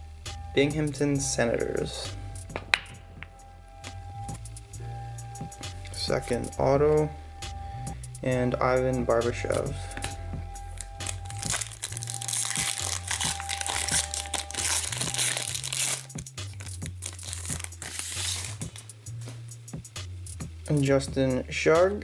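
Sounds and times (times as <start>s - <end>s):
background music with bass line: 0.0s - 22.0s
trading card pack crinkling: 9.9s - 18.8s.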